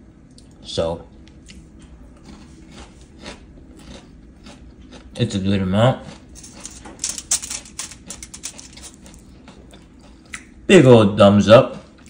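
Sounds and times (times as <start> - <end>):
aluminium foil crinkling: 6.3 - 9.3.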